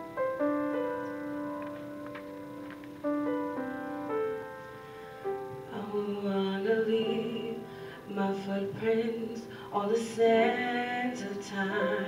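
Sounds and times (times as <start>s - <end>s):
piano chord: 0.0s - 12.0s.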